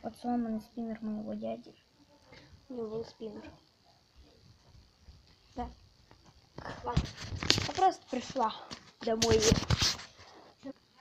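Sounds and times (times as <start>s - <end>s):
person talking: 6.6s - 9.8s.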